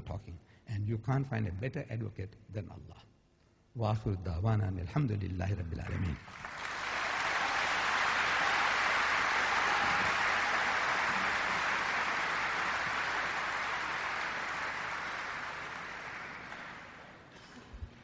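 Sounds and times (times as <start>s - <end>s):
audience applauding: 6.2s - 17.4s.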